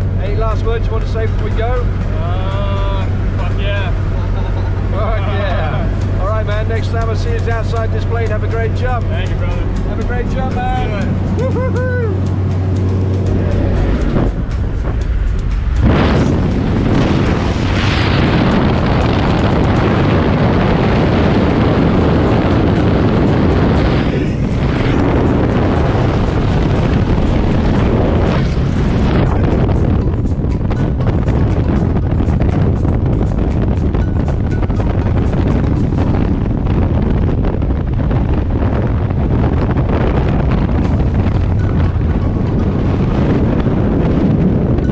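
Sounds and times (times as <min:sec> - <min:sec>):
rush of wind: 0:00.0 - 0:44.9
voices: 0:00.2 - 0:12.3.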